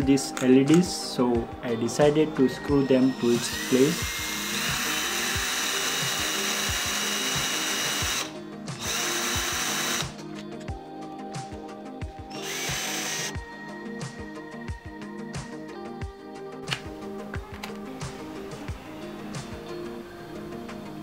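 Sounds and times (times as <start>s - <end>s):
electric drill running on metal: 2.8s - 10.2s, 12.3s - 13.4s.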